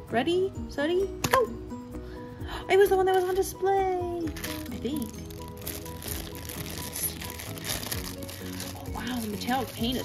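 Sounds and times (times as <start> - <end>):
background music: 0.0 - 10.0
plastic bag crinkling: 4.3 - 10.0.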